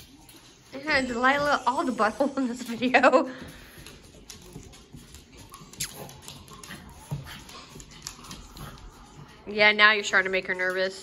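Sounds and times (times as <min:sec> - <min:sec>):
dog claws clicking on wooden floor: 0:03.4 - 0:11.0.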